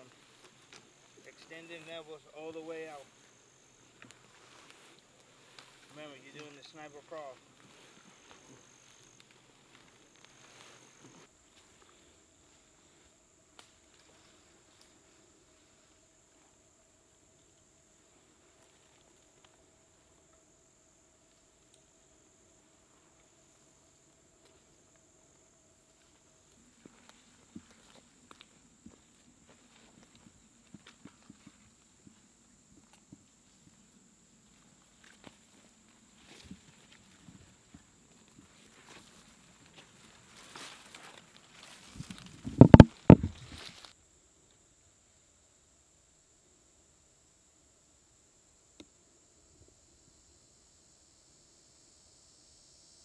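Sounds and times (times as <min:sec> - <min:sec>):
rustling leaves and twigs: 0:00.0 - 0:44.6.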